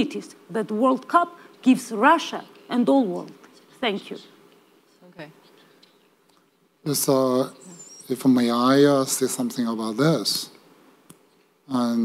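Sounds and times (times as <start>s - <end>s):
woman speaking: 0.0s - 4.4s, 5.0s - 5.4s.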